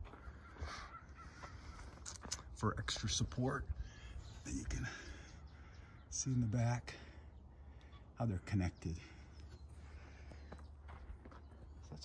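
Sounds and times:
distant bird call: 0.0 - 11.8.

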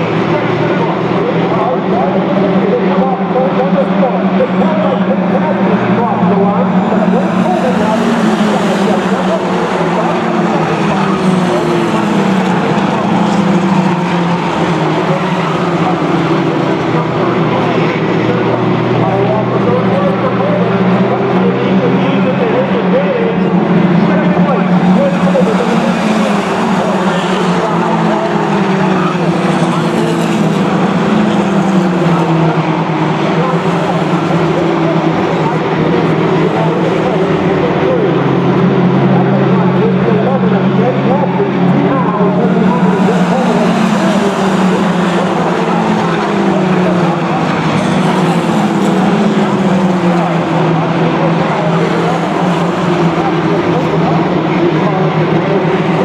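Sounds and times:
race car engines: 0.0 - 56.0.

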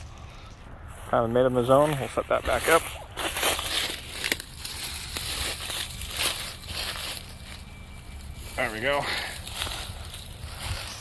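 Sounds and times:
dry leaves crunching: 0.0 - 11.0
mesh wreath rustling: 1.9 - 11.0.

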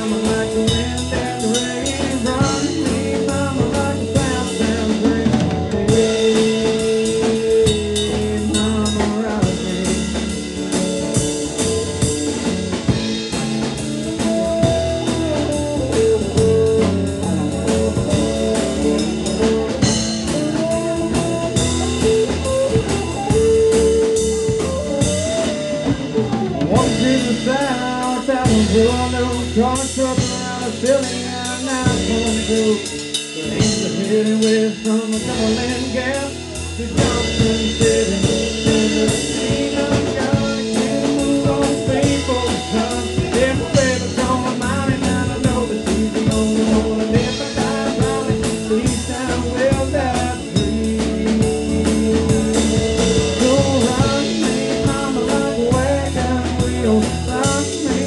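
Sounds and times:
drum kit steady beat: 0.0 - 58.0.

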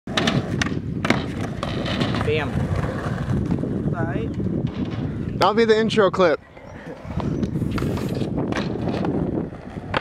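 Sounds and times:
skateboard clacks: 0.1 - 3.6, 6.9 - 10.0
skateboard wheels rolling on concrete: 0.1 - 10.0.

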